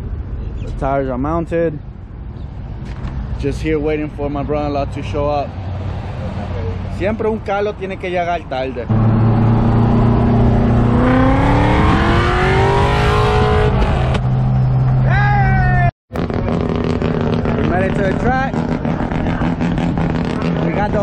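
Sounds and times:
engine running steadily: 8.9s - 14.2s
rotary engine accelerating: 8.9s - 15.1s, 16.2s - 21.0s
person shouting: 15.0s - 15.9s.

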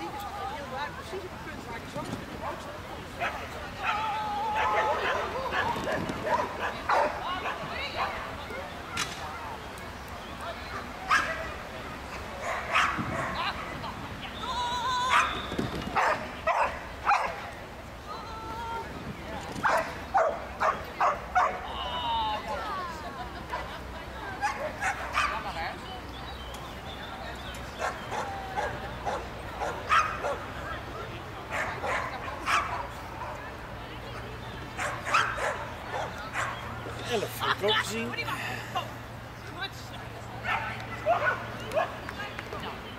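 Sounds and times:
people's voices: 0.0s - 42.9s.

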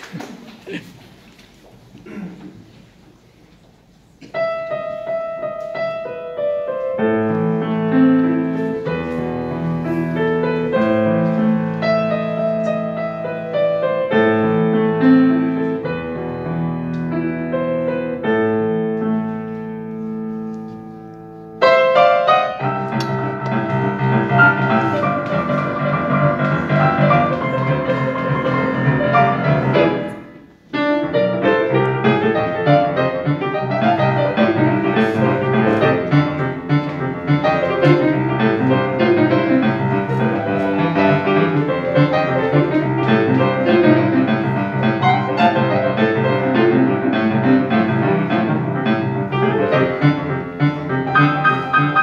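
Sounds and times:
boogie piano playing: 4.4s - 20.3s, 20.9s - 52.0s.

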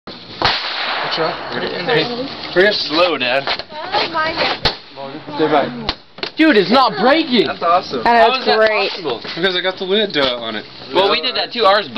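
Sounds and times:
people calling and talking: 0.2s - 11.9s.

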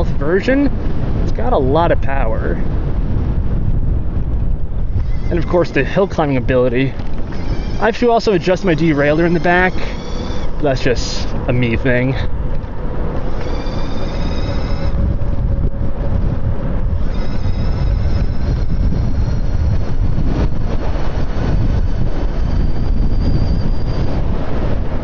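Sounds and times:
tyre and road noise: 0.0s - 25.0s
wind on microphone: 0.0s - 25.0s
high-pitched electric motor whine: 4.8s - 12.0s, 12.6s - 25.0s.

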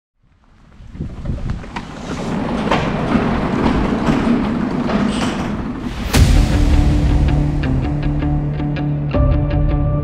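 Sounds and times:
door panels rattling on tracks: 2.0s - 5.9s.

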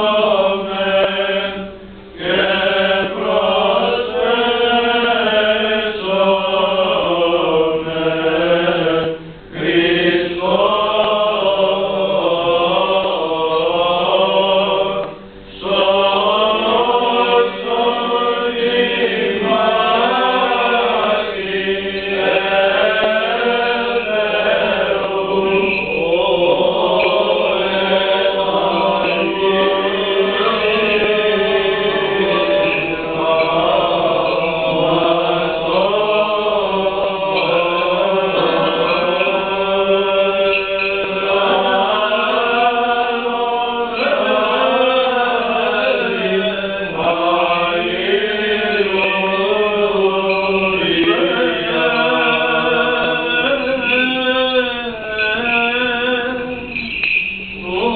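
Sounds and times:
voices chanting over a drone: 0.0s - 57.9s.

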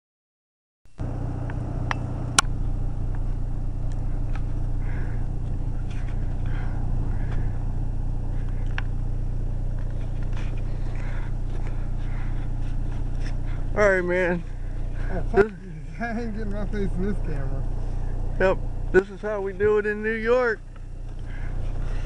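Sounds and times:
car engine idling: 1.0s - 22.0s.

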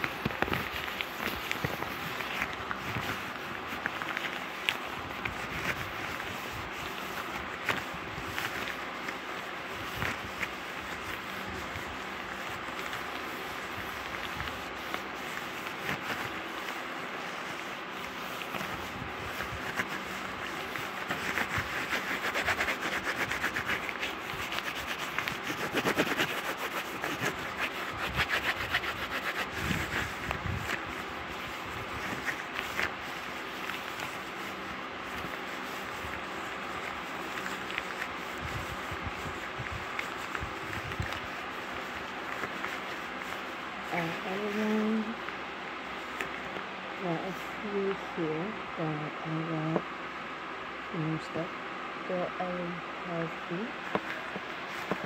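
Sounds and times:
gloved hands rubbing microphone: 0.0s - 47.6s, 53.2s - 55.0s.

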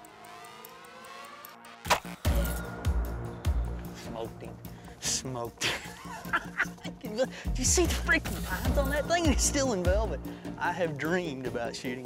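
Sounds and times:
crossbow firing crack: 1.8s - 2.3s.

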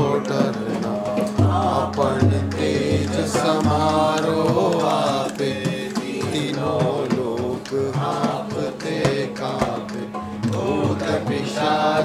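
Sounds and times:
harmonium drone: 0.0s - 12.0s
voices chanting a hymn: 0.0s - 12.0s.

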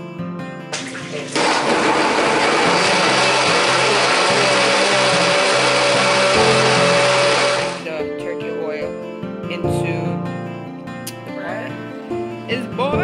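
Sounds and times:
acoustic guitar music: 0.1s - 13.0s
blender running: 0.8s - 7.9s.

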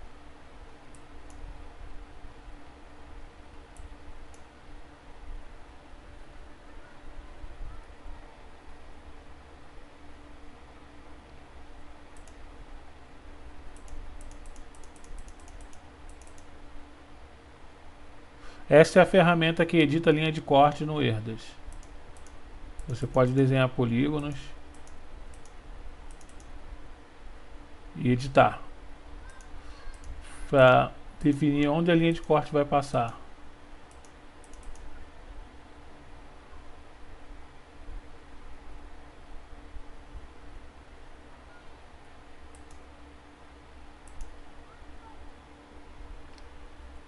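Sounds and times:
faint steady hum: 0.0s - 47.0s
low room hiss: 0.0s - 47.0s
quick light computer clicks: 12.1s - 12.4s, 13.7s - 16.5s, 21.7s - 23.5s, 24.2s - 26.6s, 29.2s - 30.2s, 33.9s - 34.9s, 42.5s - 42.9s, 44.0s - 44.4s.

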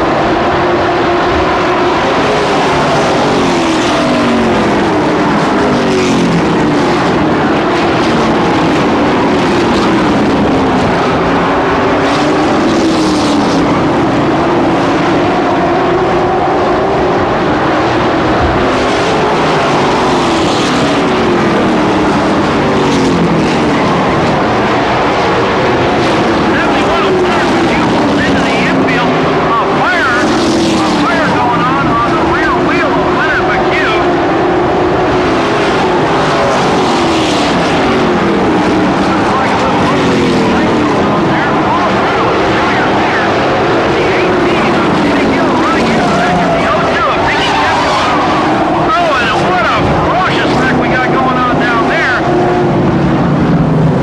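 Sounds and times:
race truck engines: 0.0s - 54.0s.

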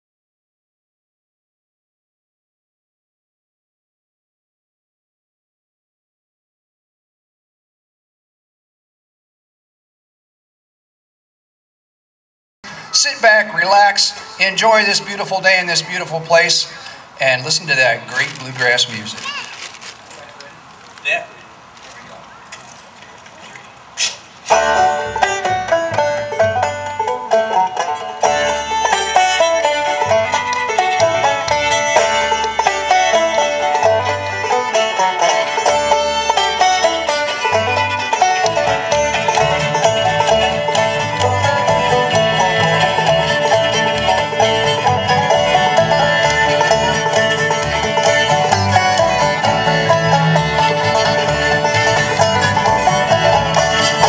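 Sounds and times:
fiddle: 12.6s - 19.9s, 24.5s - 54.0s
string band playing: 12.6s - 21.0s, 21.6s - 54.0s
banjo: 24.4s - 54.0s.

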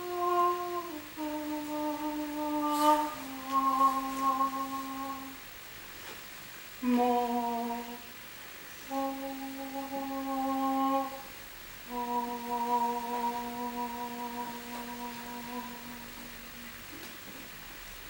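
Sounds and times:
woman singing long held notes: 0.0s - 5.4s, 6.8s - 8.2s, 8.8s - 16.9s.

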